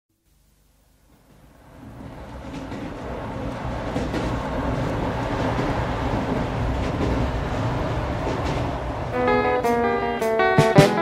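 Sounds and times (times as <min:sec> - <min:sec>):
train rumbling on track: 0:01.3 - 0:11.0
sharp track clicks: 0:02.4 - 0:07.3.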